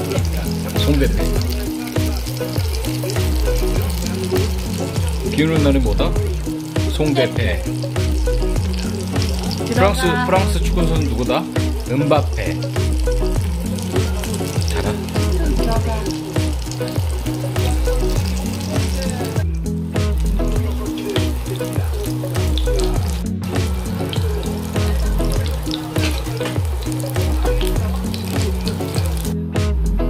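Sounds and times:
food sizzling in a pan: 0:00.0 - 0:19.4, 0:20.0 - 0:29.4
music with steady beat: 0:00.0 - 0:30.0.

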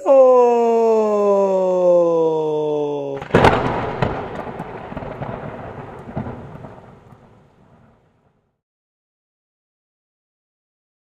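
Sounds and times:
thunder cracking and rumbling: 0:03.2 - 0:08.4.

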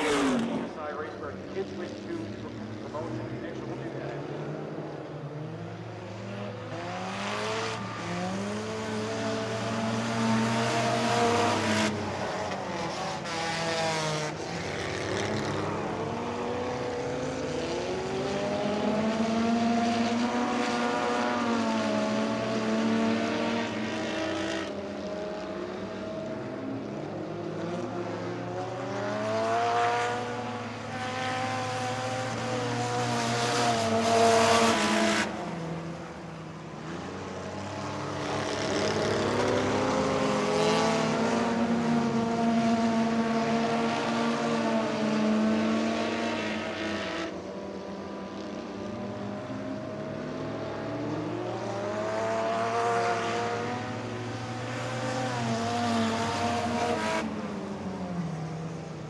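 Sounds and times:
racing car engines: 0:00.0 - 0:59.0.

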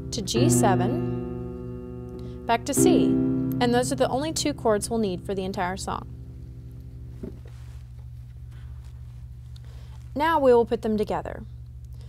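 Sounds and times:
piano chord: 0:00.0 - 0:07.7
steady low hum: 0:00.0 - 0:12.0.

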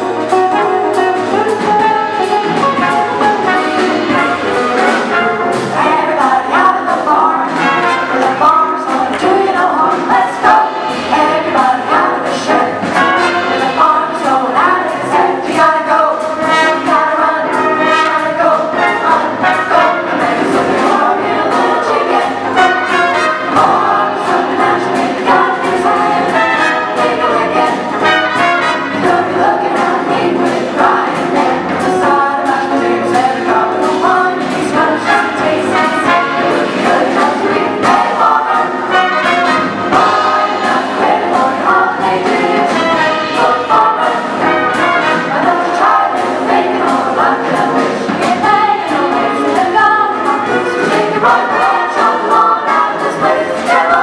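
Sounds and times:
drum kit: 0:00.0 - 0:54.0
vocal ensemble singing in harmony: 0:00.0 - 0:54.0.

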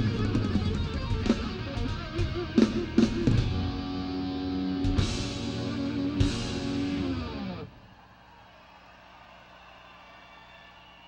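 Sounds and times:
distorted electric guitar chord: 0:00.0 - 0:07.7.

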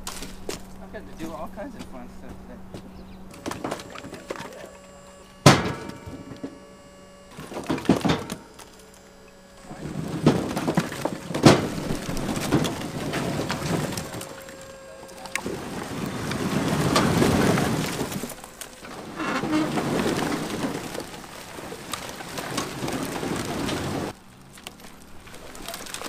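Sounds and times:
logs tumbling onto a pile: 0:03.3 - 0:26.0.

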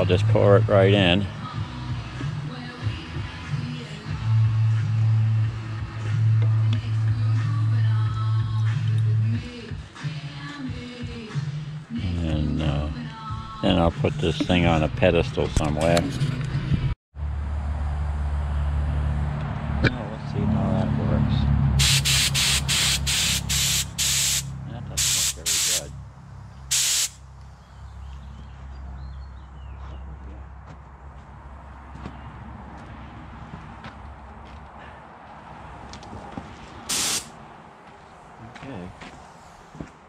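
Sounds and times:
spray gun hissing bursts: 0:21.8 - 0:25.9, 0:26.7 - 0:27.2, 0:36.9 - 0:37.3.

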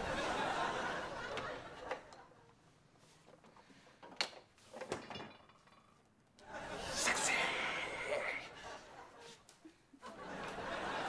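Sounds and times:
audience laughter: 0:00.0 - 0:02.4, 0:06.4 - 0:09.4, 0:10.0 - 0:11.0.

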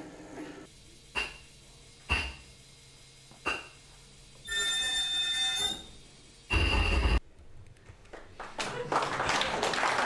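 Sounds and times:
high electronic tones: 0:00.9 - 0:07.2
high electronic tone: 0:02.0 - 0:07.2.

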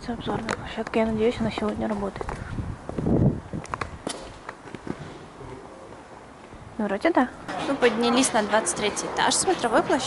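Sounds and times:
low background noise: 0:00.0 - 0:10.0.

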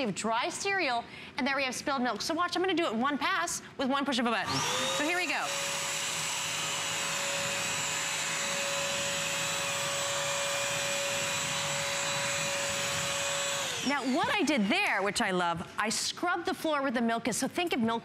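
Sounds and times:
vacuum motor whine and hum: 0:04.4 - 0:14.5.

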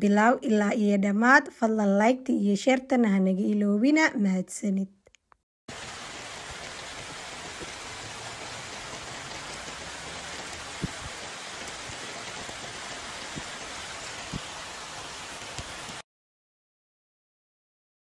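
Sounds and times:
steady rain hiss: 0:05.7 - 0:16.0.

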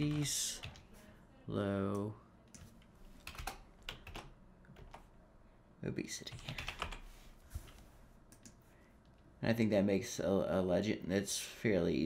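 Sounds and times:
faint keyboard typing: 0:00.0 - 0:00.9, 0:01.9 - 0:05.1, 0:06.2 - 0:09.2.

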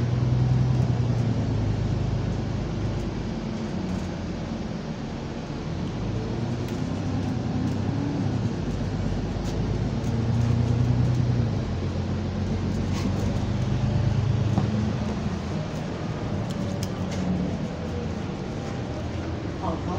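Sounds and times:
bus engine heard from inside: 0:00.0 - 0:19.9.

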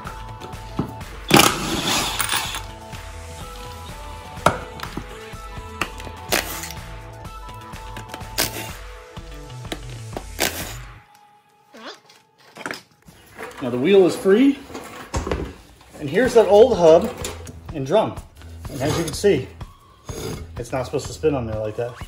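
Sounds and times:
background music with steady beat: 0:00.0 - 0:11.7, 0:15.4 - 0:22.0.

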